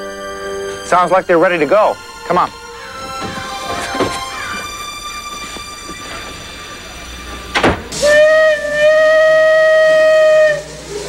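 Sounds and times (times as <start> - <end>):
steam hiss: 0.0 - 11.0
steam locomotive whistle: 0.0 - 11.0.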